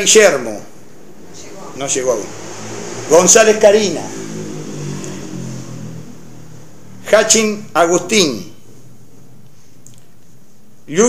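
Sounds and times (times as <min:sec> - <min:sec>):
vehicle engine humming: 0:00.4 - 0:09.8.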